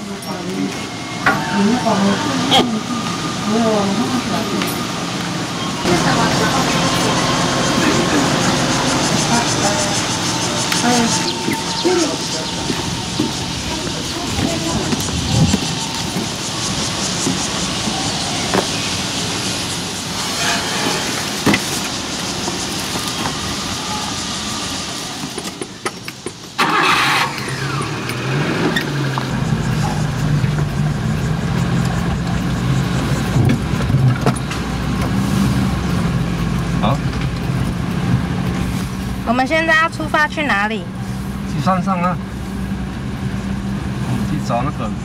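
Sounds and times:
outdoor background noise: 0.0 - 45.0
truck engine idling: 0.0 - 45.0
engine starter cranking: 26.0 - 29.0.

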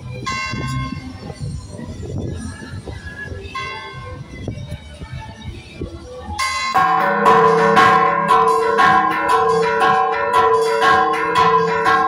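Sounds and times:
church bells pealing: 6.4 - 12.0.

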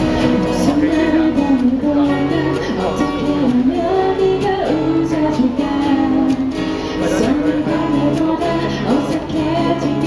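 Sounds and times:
acoustic guitars strummed: 0.0 - 10.0
woman singing: 0.2 - 10.0.

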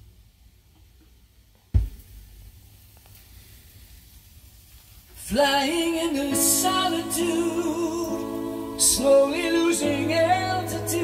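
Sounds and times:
vinyl surface hiss and ticks: 0.0 - 11.0
stylus thump on record: 1.7 - 2.1.

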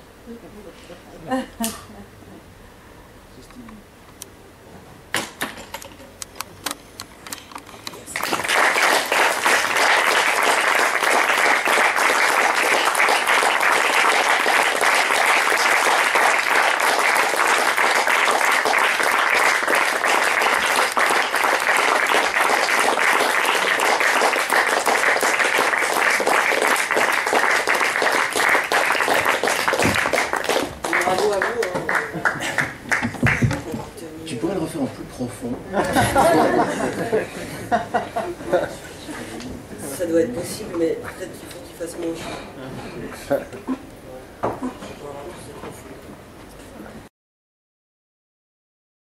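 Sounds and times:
audience applauding: 8.1 - 33.7.

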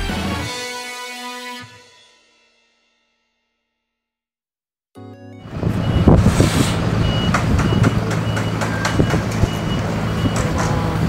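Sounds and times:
truck engine running: 5.5 - 11.0
short high warning beeps: 5.7 - 10.5.

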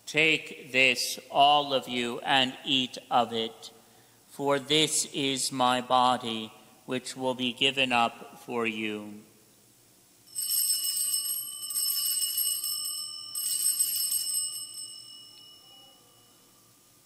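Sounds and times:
altar bells jingling: 10.3 - 16.8.

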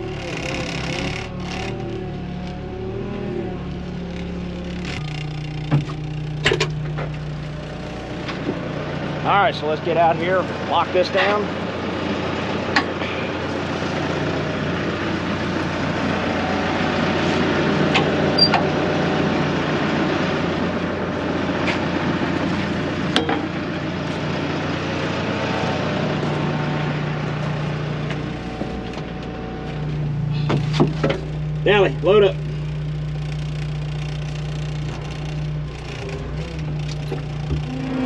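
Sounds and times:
vehicle engine running: 0.0 - 38.0
sharp clicks and knocks: 4.2 - 7.3.

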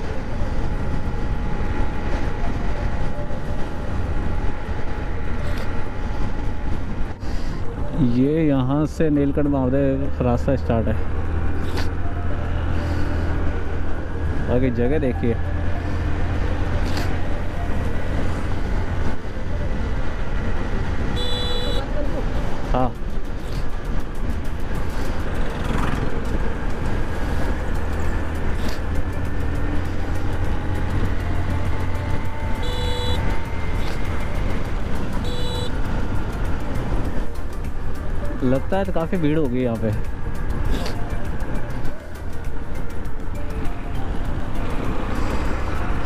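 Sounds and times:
horn beeps: 21.1 - 21.9, 32.4 - 34.0, 35.2 - 36.0
motorcycle engine running: 23.1 - 38.4.

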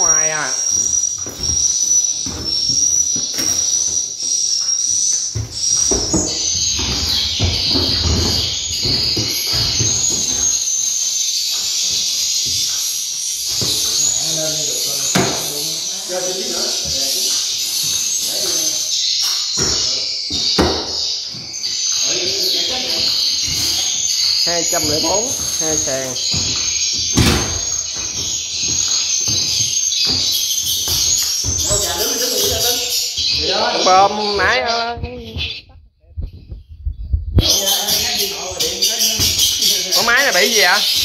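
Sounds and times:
birds chirping densely: 0.0 - 35.6, 37.4 - 41.0.

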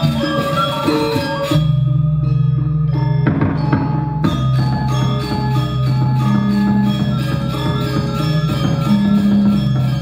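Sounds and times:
metallophones striking notes: 0.0 - 10.0.

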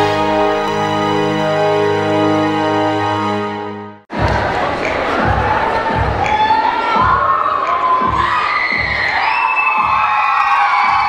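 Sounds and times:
intro music held chord: 0.0 - 4.1
crowd cheering and shrieking: 4.1 - 11.0.

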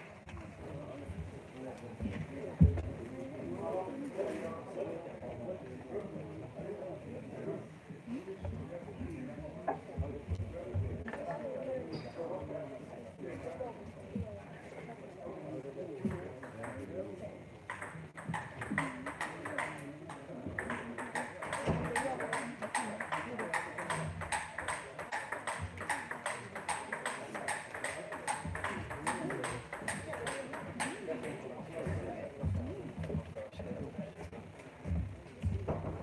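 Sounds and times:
table tennis ball clicking: 17.7 - 19.8, 20.6 - 31.0.

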